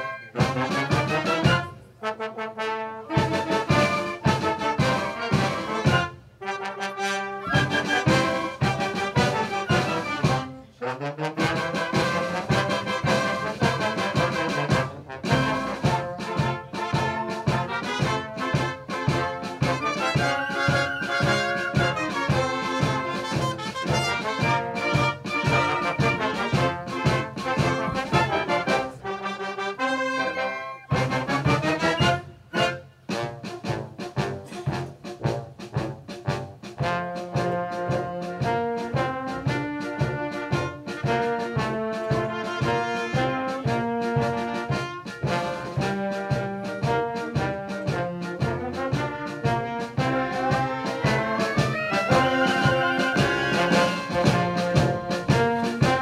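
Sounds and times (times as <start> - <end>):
wind band playing: 0.0 - 56.0.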